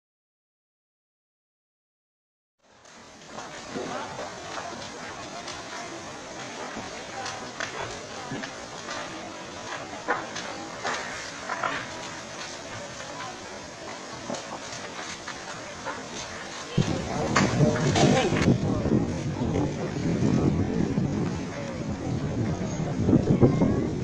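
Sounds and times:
fire cracking and popping: 2.6s - 24.0s
fire rushing: 2.6s - 24.0s.

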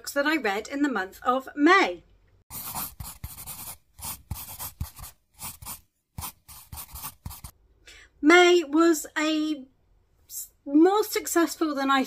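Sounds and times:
pen scratching on paper: 2.5s - 7.5s.

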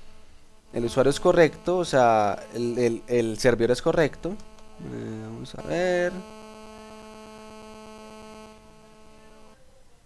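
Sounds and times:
electrical hum: 0.0s - 10.0s.

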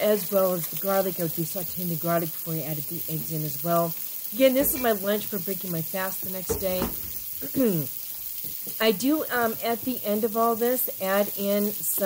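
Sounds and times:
onions sizzling in a frying pan: 0.0s - 12.0s
person clearing throat: 7.4s - 7.9s
person humming: 7.4s - 7.9s.

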